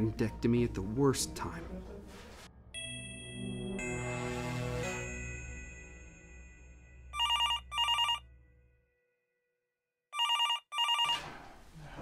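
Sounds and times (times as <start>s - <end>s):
music: 0.0s - 9.5s
telephone ringing: 7.2s - 8.3s, 10.2s - 11.3s.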